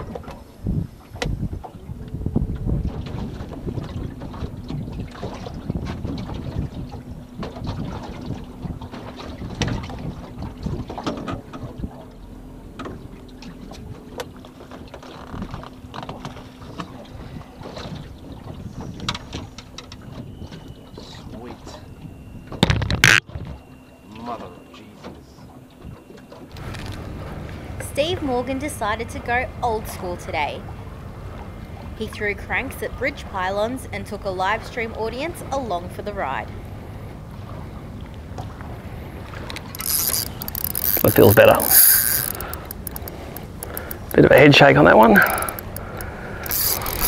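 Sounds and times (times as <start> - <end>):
wind buffeting microphone: 0.0 - 12.1
water slapping against boat hull: 0.0 - 12.2, 12.8 - 20.7
steady low hum: 26.6 - 47.0.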